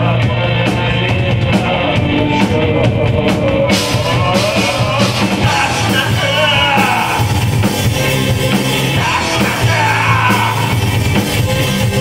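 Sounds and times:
person singing: 0.0s - 7.7s, 8.7s - 11.1s
drums: 0.0s - 12.0s
electric guitar: 0.0s - 12.0s.

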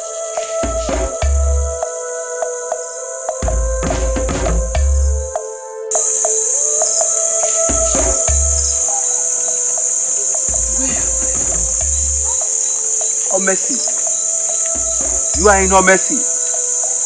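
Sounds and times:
crickets chirping: 0.0s - 17.0s
steady low hum: 6.0s - 12.7s, 14.1s - 17.0s.

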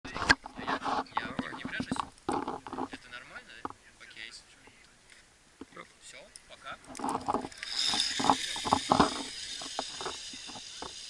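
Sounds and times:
people talking indistinctly: 0.1s - 11.0s.

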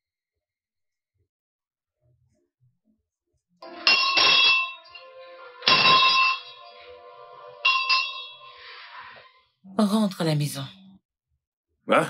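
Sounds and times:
metal bell ringing: 3.6s - 6.8s, 7.6s - 8.7s.

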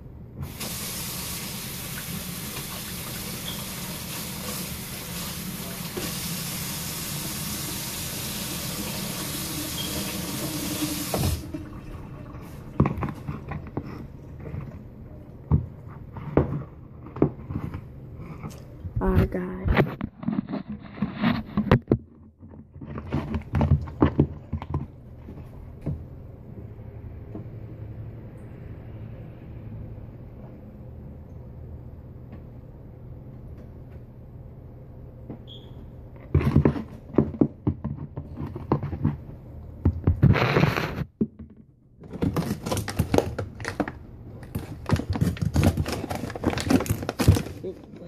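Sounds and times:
crinkling rustle: 19.7s - 25.5s, 42.0s - 48.0s.

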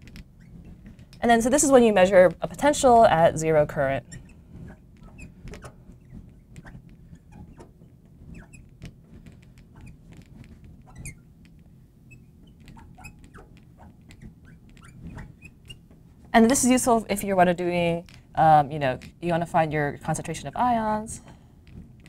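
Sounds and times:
marker squeaking on glass: 0.0s - 1.1s, 4.0s - 15.9s.

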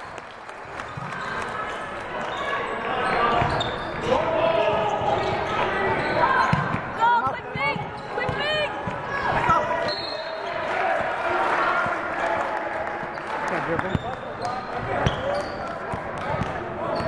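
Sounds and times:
sneakers squeaking: 0.8s - 4.1s, 4.7s - 10.6s, 13.8s - 17.0s
basketball bouncing on court: 4.8s - 9.6s, 14.8s - 17.0s.

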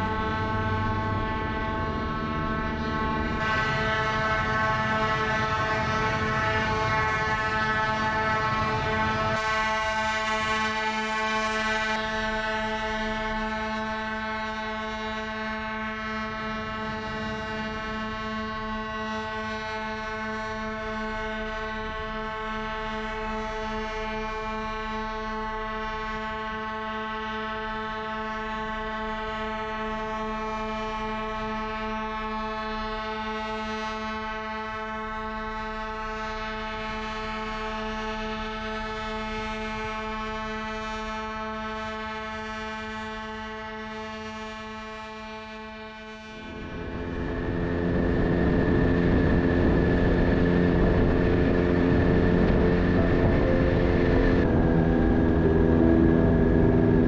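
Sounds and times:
ships' horns blasting: 0.0s - 57.0s.

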